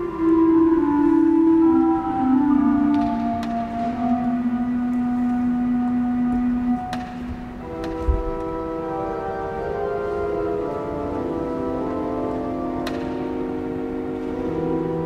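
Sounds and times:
organ playing held chords: 0:00.0 - 0:15.0.

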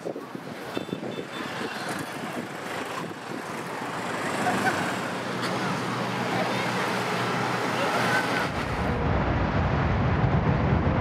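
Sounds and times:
jet airliner engine rumble: 0:00.0 - 0:11.0.

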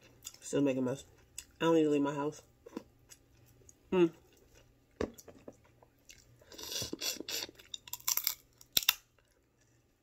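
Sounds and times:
crab shells cracking: 0:07.7 - 0:09.2.

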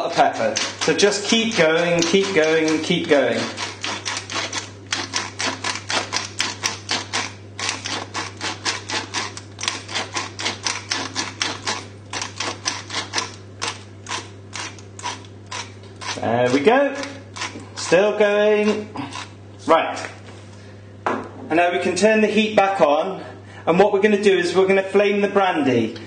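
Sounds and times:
pepper mill grinding: 0:00.0 - 0:19.4.

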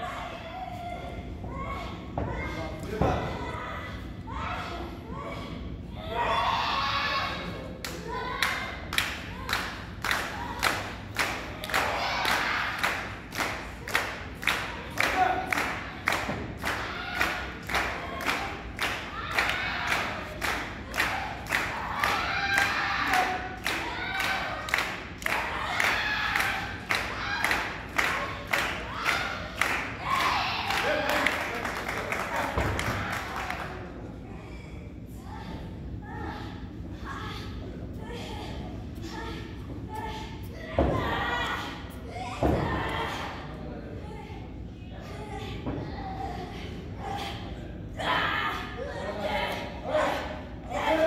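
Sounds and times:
audience clapping in rhythm: 0:08.9 - 0:33.8.

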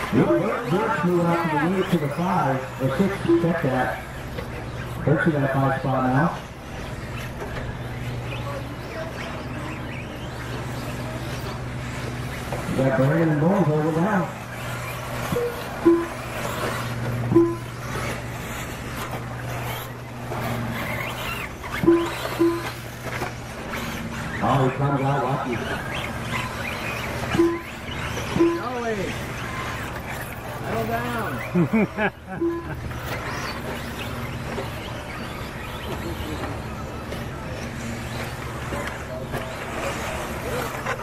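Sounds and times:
electric rc cars running: 0:00.0 - 0:41.0
steady low hum: 0:00.0 - 0:41.0
short electronic beeps: 0:03.0 - 0:04.2, 0:15.1 - 0:18.2, 0:21.3 - 0:23.2, 0:25.6 - 0:28.9, 0:32.2 - 0:34.0.

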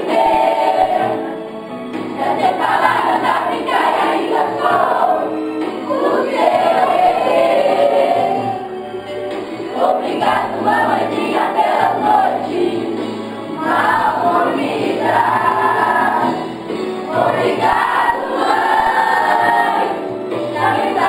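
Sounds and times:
children's choir singing: 0:00.0 - 0:08.8, 0:09.4 - 0:21.0.

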